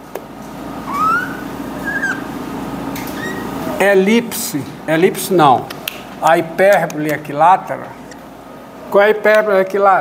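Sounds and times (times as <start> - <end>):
low room hum: 0.0 - 10.0
marker squeaking on whiteboard: 0.9 - 2.3, 3.0 - 3.6.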